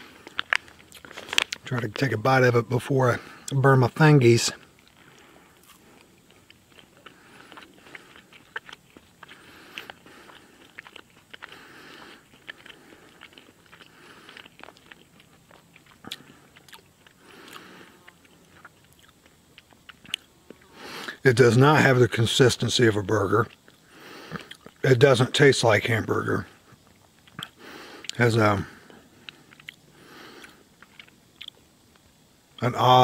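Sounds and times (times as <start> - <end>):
man chewing food: 0.0 - 2.2, 4.5 - 21.2, 23.3 - 24.8, 26.4 - 32.6.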